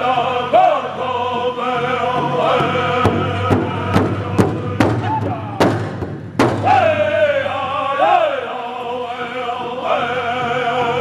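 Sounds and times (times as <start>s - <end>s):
men singing: 0.0s - 5.8s, 6.6s - 11.0s
big drum beats: 1.6s - 7.4s.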